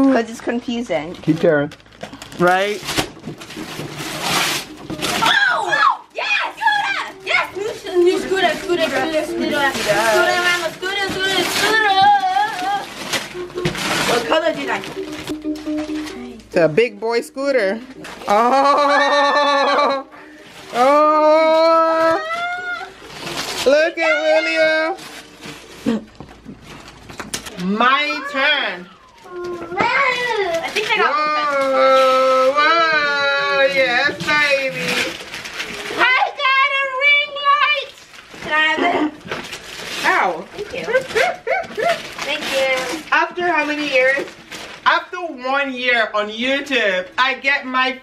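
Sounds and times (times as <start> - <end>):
wrapping paper rustling: 0.0 - 47.9
child shouting excitedly: 5.2 - 8.1, 28.1 - 31.6, 36.0 - 38.0.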